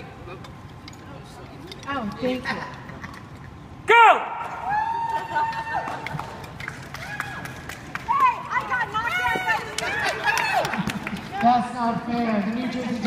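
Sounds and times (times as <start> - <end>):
people yelling and whooping: 3.9 - 11.0.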